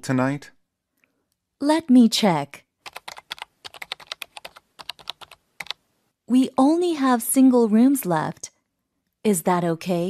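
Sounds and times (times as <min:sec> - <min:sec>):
typing on computer keyboard: 0:02.8 - 0:05.8.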